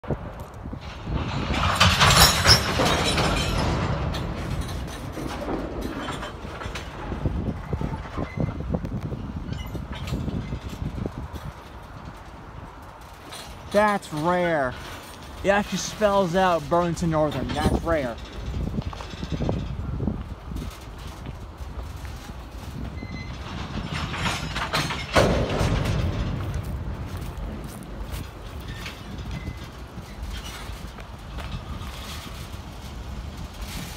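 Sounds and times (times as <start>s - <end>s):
freight train wheels rumbling: 0.0s - 33.9s.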